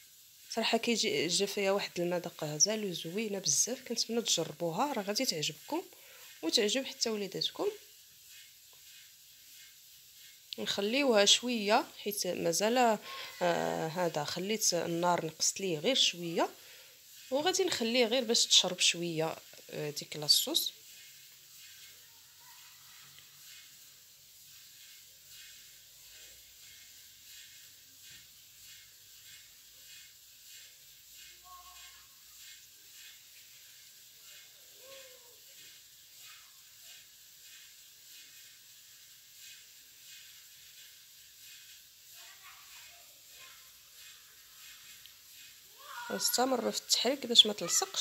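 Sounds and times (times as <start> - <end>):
sauce simmering with crackle: 0.0 - 48.0.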